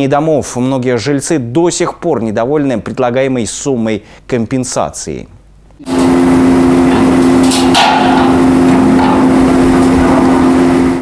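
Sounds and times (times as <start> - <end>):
construction machinery droning: 5.8 - 11.0.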